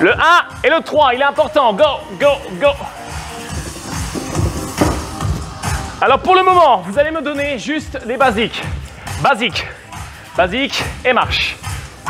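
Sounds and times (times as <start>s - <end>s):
fast electronic workout music: 0.0s - 12.0s.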